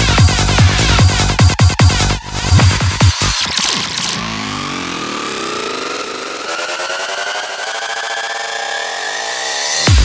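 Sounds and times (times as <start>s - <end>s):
rising synth riser: 2.4s - 10.0s
buzzing synth texture: 2.5s - 9.6s.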